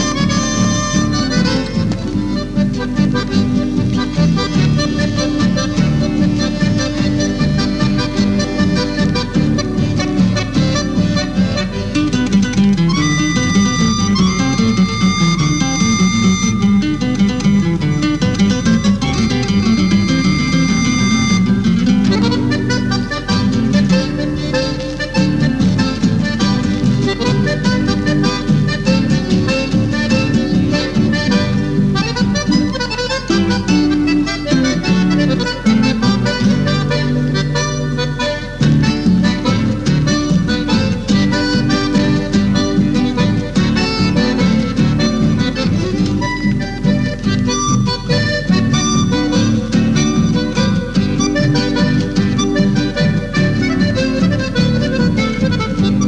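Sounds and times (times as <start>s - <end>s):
accordion: 0.0s - 56.0s
guitar accompaniment: 0.0s - 56.0s.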